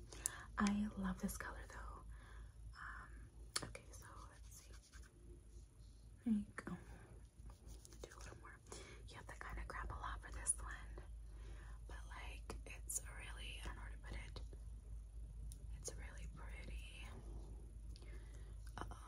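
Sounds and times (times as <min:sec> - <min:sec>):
soft close-up whispering: 0:00.0 - 0:14.8, 0:15.4 - 0:19.0.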